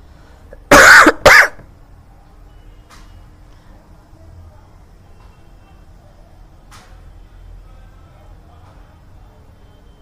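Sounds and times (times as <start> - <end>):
person coughing: 0.6 - 1.7.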